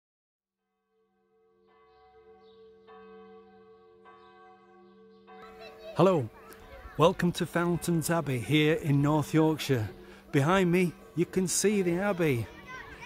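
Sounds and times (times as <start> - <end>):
large bell tolling: 1.4 - 10.0.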